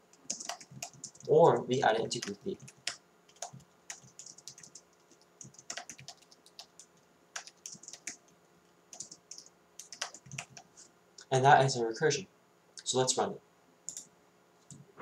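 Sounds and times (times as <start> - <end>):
computer keyboard typing: 0.1 - 8.3, 8.9 - 10.7, 13.9 - 14.1.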